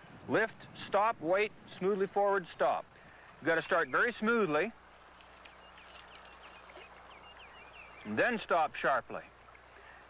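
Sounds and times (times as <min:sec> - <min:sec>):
low steady hum: 0:00.0 - 0:10.0
small birds chirping: 0:02.5 - 0:10.0.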